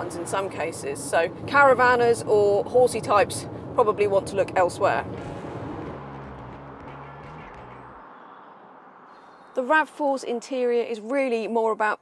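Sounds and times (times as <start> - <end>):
car cabin road noise: 0.0 - 11.2.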